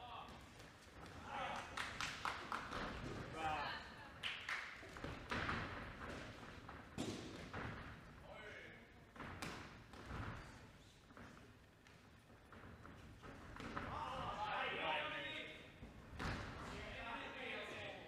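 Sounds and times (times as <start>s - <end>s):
footwork on ring canvas: 0.0s - 4.0s, 4.7s - 17.8s.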